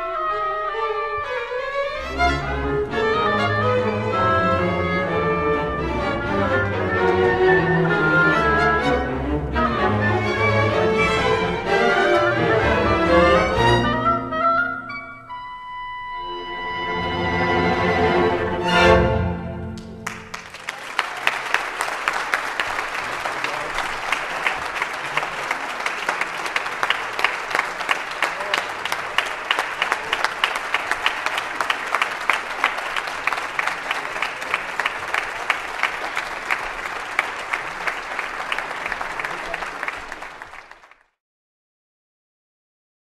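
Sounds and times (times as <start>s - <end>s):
audience applauding: 6.0s - 9.1s, 19.8s - 41.2s.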